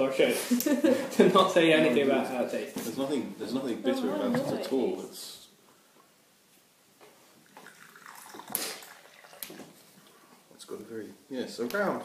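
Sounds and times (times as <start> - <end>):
tea pouring into a cup: 7.4 - 10.2.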